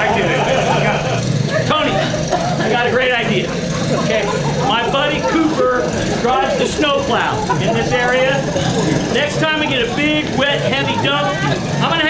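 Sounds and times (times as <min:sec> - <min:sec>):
amplified speech: 0:00.0 - 0:12.0
low hum: 0:00.0 - 0:12.0.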